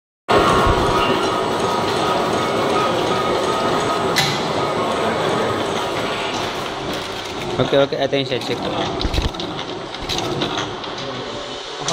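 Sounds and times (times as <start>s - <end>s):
faint machine whine: 0.3s - 11.9s
machine mechanical clatter: 0.3s - 11.9s.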